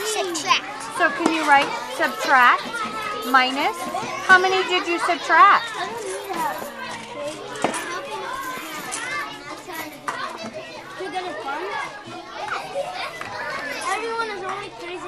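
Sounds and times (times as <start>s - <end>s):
children talking: 0.0s - 15.0s.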